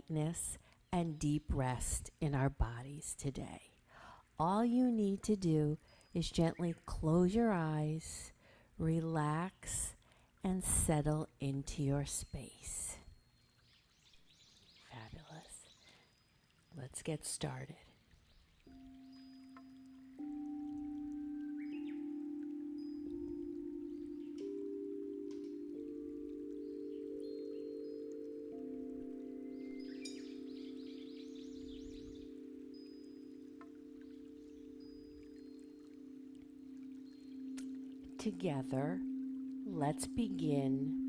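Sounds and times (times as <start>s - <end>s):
crystal singing bowls ringing: 18.7s - 41.0s
high chime notes: 18.7s - 41.0s.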